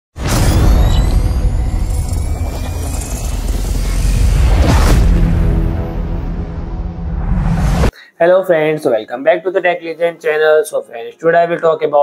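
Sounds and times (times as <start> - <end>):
deep rumbling drone: 0.8 - 7.9
thin high rising tone: 1.1 - 4.7.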